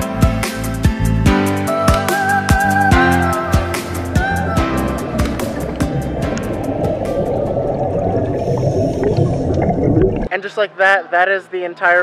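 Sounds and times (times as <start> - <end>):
background music: 0.0 - 12.0
underwater bubbles rumbling: 4.2 - 10.3.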